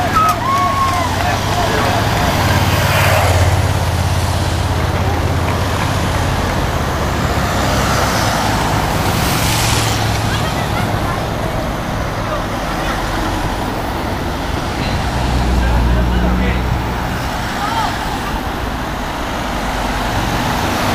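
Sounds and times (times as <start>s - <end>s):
cars driving past: 0.0s - 20.9s
spectators shouting: 0.0s - 20.9s.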